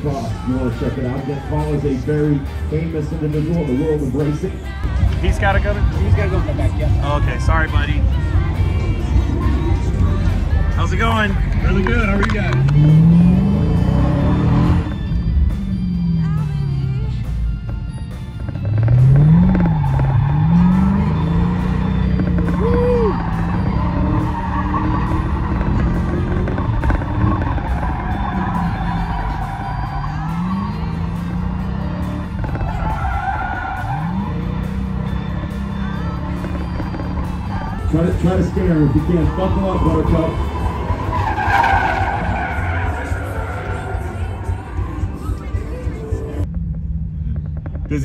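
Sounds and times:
tires squealing: 0.0s - 46.5s.

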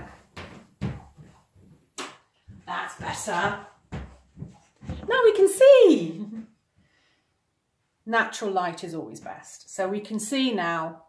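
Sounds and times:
footsteps on hard floor: 0.0s - 5.6s.

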